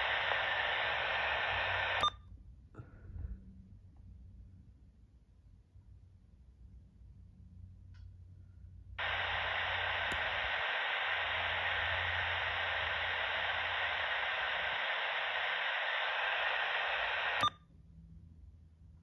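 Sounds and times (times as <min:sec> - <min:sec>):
radio static hissing: 0:00.0 - 0:02.1, 0:09.0 - 0:17.5
scanner click: 0:00.0 - 0:02.2, 0:09.0 - 0:17.5.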